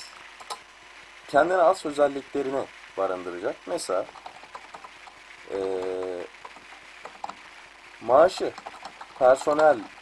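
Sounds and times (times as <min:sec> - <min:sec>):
keyboard typing clicks: 0:08.4 - 0:09.7.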